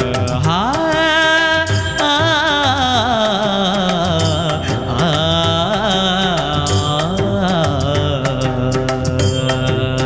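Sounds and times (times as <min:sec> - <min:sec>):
instrumental backing track: 0:00.0 - 0:10.0
person singing: 0:00.0 - 0:10.0.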